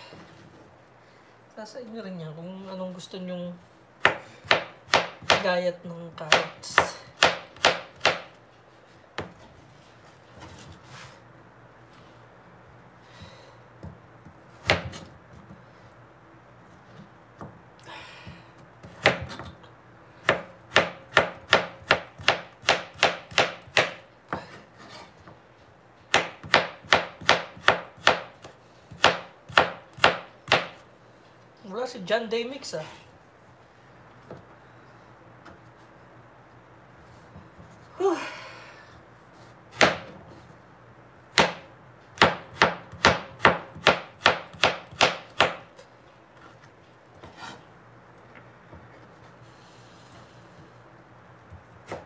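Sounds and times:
knife chopping on plastic board: 0:26.1 - 0:30.8, 0:42.2 - 0:45.6.

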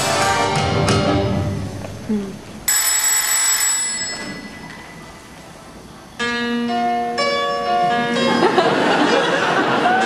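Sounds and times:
telephone bell ringing: 0:02.7 - 0:05.0.

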